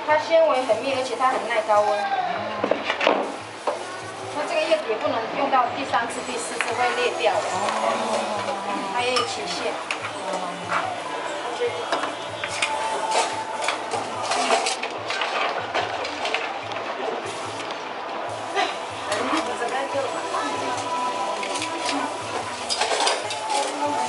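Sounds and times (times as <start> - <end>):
restaurant voices: 0.0 - 24.0
sizzling hiss: 0.2 - 2.0, 3.1 - 4.9, 5.8 - 15.2, 17.2 - 17.7, 18.3 - 24.0
metal utensil clinking on stones: 21.4 - 24.0.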